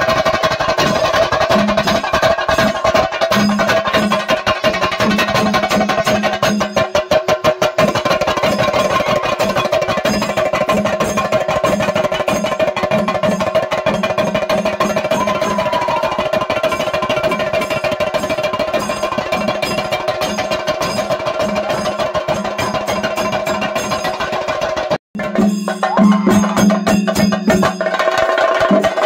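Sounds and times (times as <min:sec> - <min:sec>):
fast drum roll: 0:00.0 - 0:29.0.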